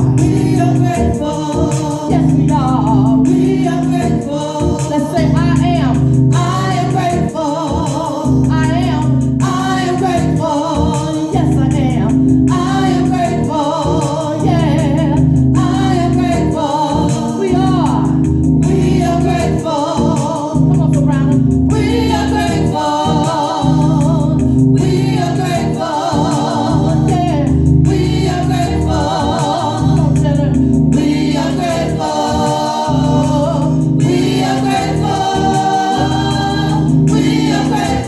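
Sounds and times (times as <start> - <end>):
gospel choir singing: 0.0 - 38.0
sustained keyboard chords: 0.0 - 38.0.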